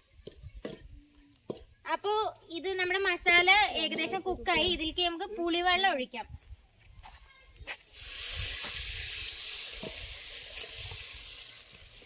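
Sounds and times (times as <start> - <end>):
spices sizzling in hot oil: 7.8 - 12.0.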